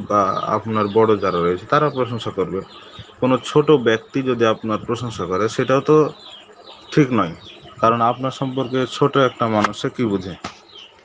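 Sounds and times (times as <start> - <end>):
man talking: 0.0 - 6.2, 6.9 - 10.5.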